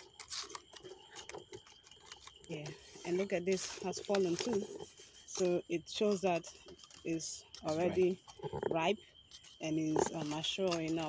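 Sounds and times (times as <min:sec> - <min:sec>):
person saying yeah: 0:07.7 - 0:08.1.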